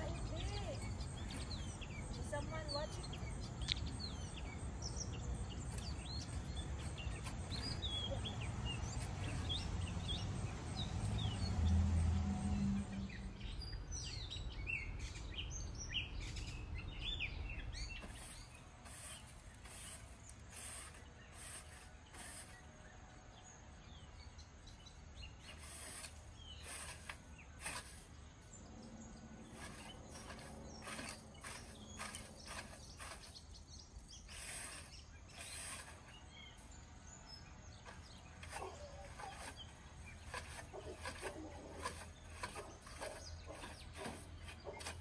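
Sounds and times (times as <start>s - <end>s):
birds chirping: 0.0s - 45.0s
broom scraping a gutter: 4.1s - 10.5s, 16.2s - 24.0s, 24.8s - 45.0s.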